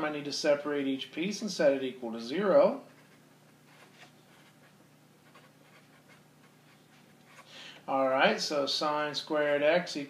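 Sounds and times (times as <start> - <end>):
marker scratching on paper: 2.9 - 7.5.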